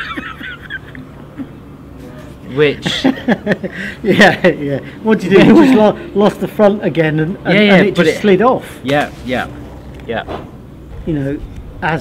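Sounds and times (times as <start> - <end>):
men laughing heartily: 0.0 - 1.8, 2.8 - 6.0.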